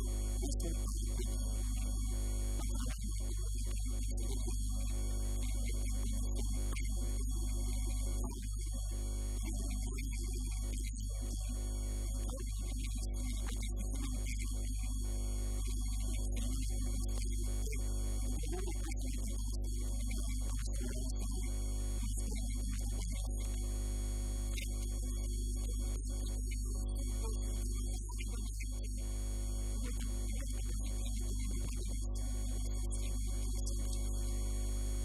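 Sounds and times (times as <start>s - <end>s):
electrical mains hum: 0.0s - 4.9s.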